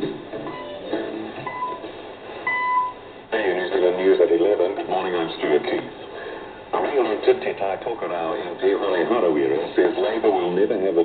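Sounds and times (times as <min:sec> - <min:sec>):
faint music on radio: 0:00.0 - 0:11.0.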